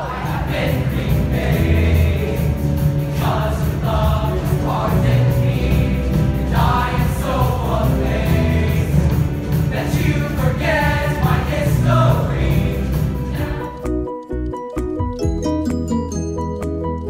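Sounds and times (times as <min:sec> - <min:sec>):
choir singing: 0:00.0 - 0:13.9
musical accompaniment: 0:00.0 - 0:17.0.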